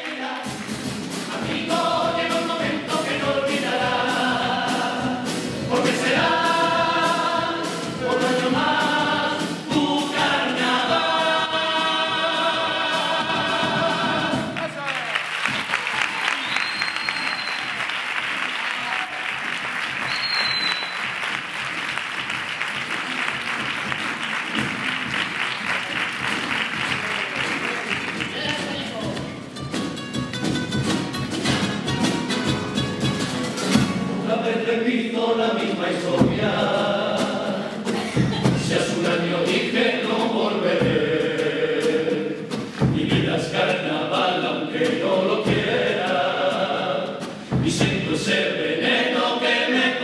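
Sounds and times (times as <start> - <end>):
chorus singing in harmony: 0.0 - 14.6, 33.8 - 50.0
steady drum beat: 0.3 - 16.0, 19.2 - 34.3, 35.8 - 50.0
guitars: 0.4 - 14.6, 22.9 - 34.7, 35.9 - 49.8
audience applause: 14.5 - 29.2.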